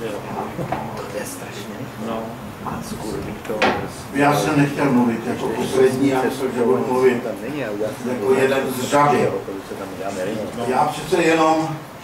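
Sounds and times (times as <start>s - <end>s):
murmured speech: 0.0s - 11.8s.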